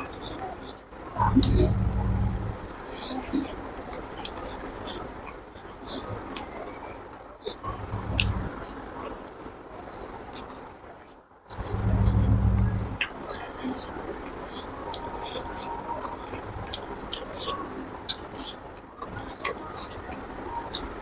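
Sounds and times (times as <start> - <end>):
low rumble: 1.0 - 2.9, 7.6 - 8.7, 11.5 - 13.0.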